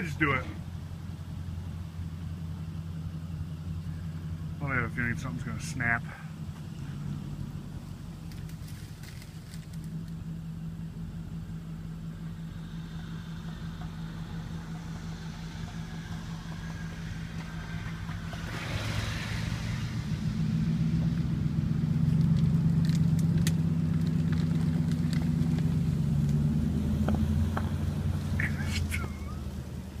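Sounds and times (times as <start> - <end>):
truck engine running: 0.0 - 30.0.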